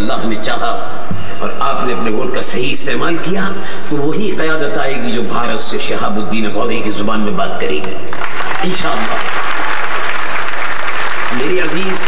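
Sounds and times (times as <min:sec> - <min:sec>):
large crowd applauding: 0:08.1 - 0:12.0.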